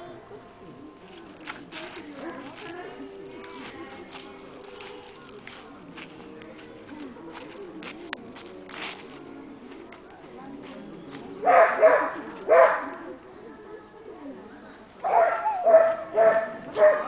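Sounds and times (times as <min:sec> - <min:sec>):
faint background murmur: 0:00.0 - 0:17.0
small dog barking: 0:11.4 - 0:13.1, 0:15.0 - 0:17.0.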